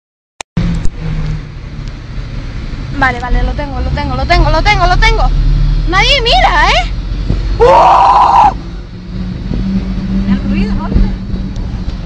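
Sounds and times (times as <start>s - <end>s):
car engine running at low revs: 0.6s - 7.7s, 8.5s - 12.0s.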